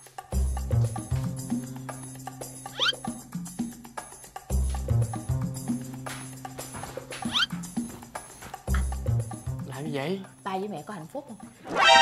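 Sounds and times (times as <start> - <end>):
sitcom background music: 0.0 - 12.0
rising squeak sound effect: 2.8 - 3.0.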